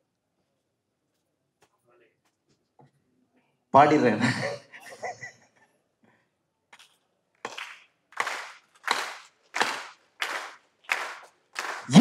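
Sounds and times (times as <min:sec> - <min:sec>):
sharp hand clap with hall echo: 0:06.8 - 0:12.0.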